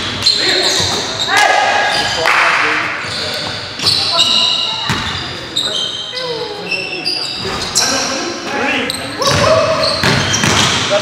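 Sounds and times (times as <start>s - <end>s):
sneakers squeaking on hardwood: 0.0s - 2.2s, 2.8s - 11.0s
players calling out: 0.2s - 11.0s
basketball bouncing: 4.9s - 5.2s, 9.3s - 10.9s.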